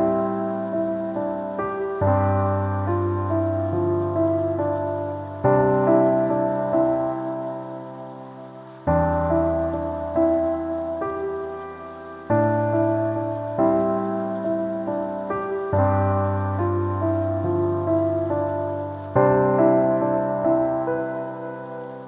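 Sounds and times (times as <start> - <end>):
rain hiss: 0.0 - 22.0
slow gentle piano music: 0.0 - 22.0.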